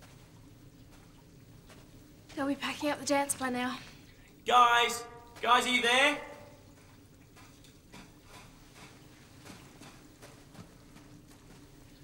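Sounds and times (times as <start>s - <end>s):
footsteps running on sand: 6.8s - 12.0s.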